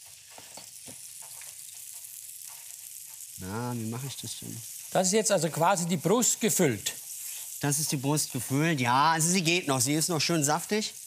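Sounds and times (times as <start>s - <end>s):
meat sizzling in a pan: 0.0s - 11.0s.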